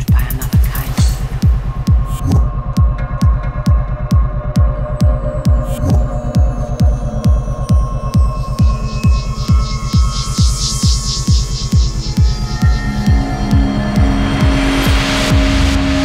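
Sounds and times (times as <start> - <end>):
electronic kick drum: 0.0 - 16.0.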